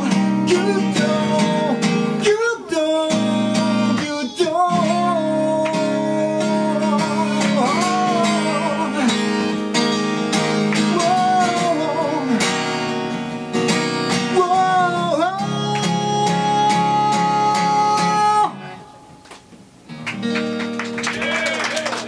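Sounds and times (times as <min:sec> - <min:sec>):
voices singing: 0:00.0 - 0:09.1
man singing: 0:00.0 - 0:12.9, 0:14.0 - 0:19.0
acoustic guitar strumming: 0:00.0 - 0:21.4.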